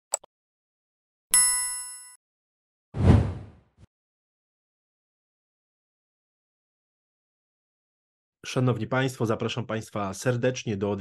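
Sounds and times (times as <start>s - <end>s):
bright metallic bell ding: 1.4s - 2.2s
short whoosh: 3.0s - 3.6s.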